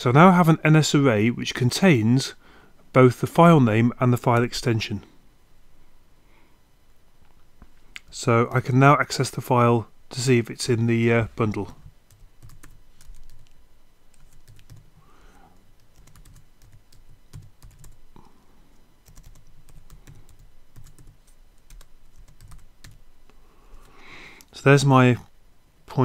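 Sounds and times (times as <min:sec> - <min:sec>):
computer keyboard typing: 0:12.1 - 0:15.0, 0:15.8 - 0:18.0, 0:19.0 - 0:23.0.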